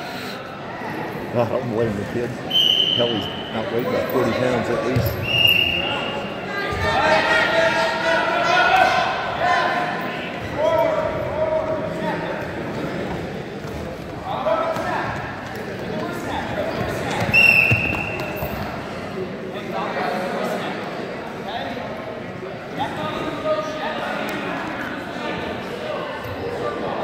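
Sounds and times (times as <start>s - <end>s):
referee's whistle: 2.5s - 3.5s, 5.1s - 6.4s, 17.3s - 18.4s.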